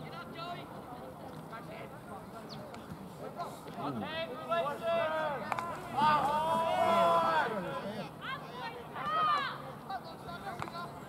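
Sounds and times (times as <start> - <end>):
faint crowd babble: 0.0 - 11.0.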